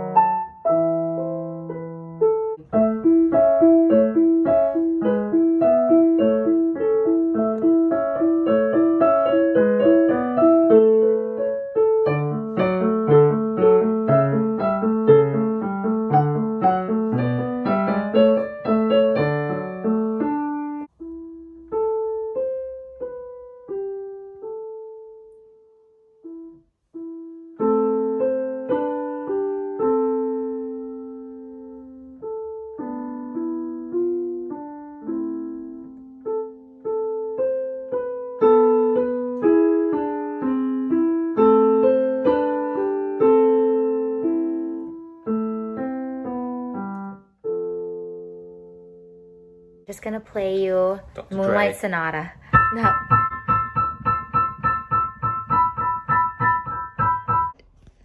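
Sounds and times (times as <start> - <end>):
digital piano playing: 0.0 - 50.2, 51.2 - 57.6.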